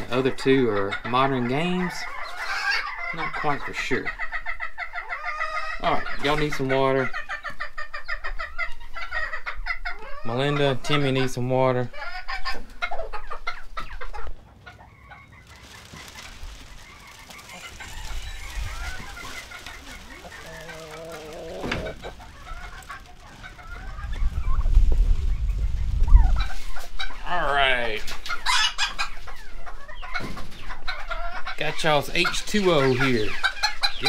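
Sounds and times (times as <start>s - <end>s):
chickens clucking: 0.0s - 34.0s.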